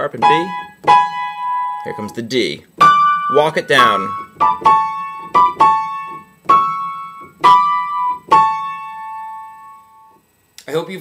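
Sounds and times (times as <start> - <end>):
upright piano melody: 0.0 - 10.0.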